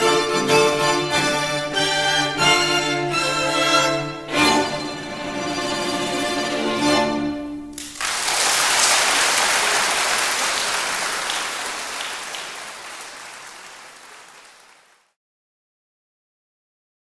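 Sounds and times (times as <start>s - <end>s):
audience applause: 7.8s - 15.1s.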